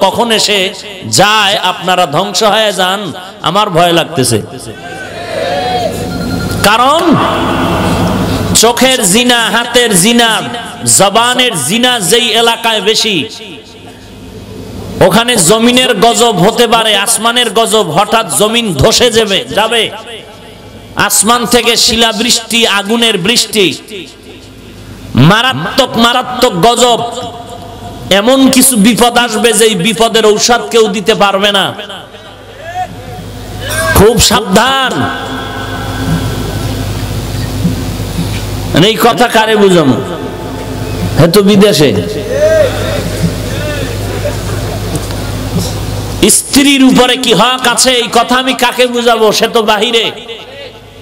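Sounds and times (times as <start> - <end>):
man speaking amplified: 0.0 - 4.8, 6.6 - 14.2, 14.9 - 36.6, 38.7 - 44.5, 45.6 - 51.0
voice echoing through loudspeakers: 0.0 - 5.2, 5.8 - 37.0, 37.6 - 51.0
low hum: 7.2 - 8.6, 34.9 - 38.8.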